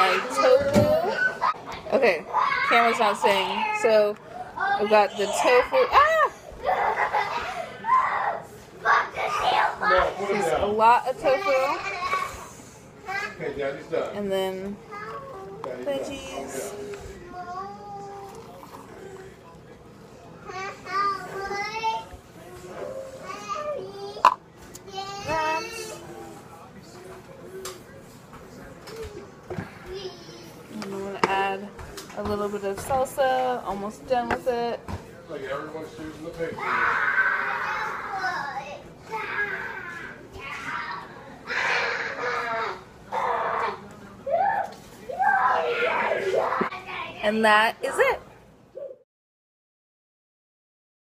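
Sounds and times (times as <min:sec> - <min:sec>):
children talking and playing: 0:00.0 - 0:14.0, 0:14.6 - 0:49.0.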